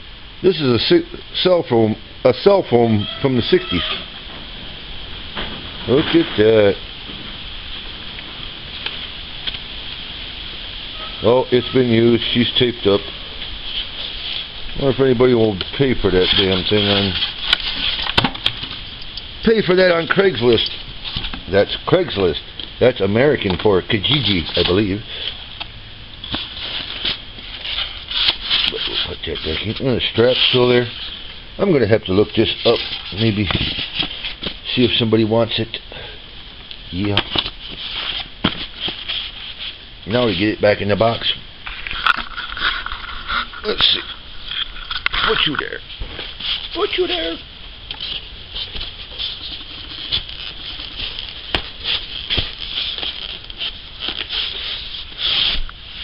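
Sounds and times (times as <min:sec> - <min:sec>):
soft rustle: 0:02.4 - 0:35.7, 0:36.6 - 0:56.0.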